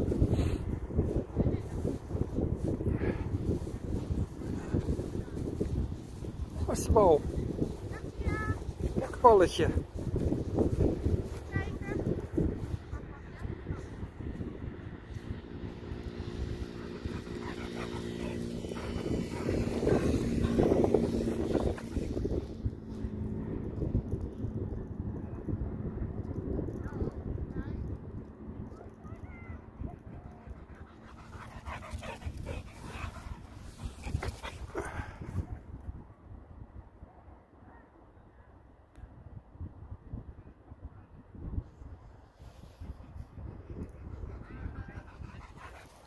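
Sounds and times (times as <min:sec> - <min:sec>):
wind rumble on microphone: 0:00.0 - 0:46.0
distant engine drone: 0:14.0 - 0:23.8
dog panting: 0:15.8 - 0:22.4, 0:30.2 - 0:35.3, 0:43.7 - 0:46.0.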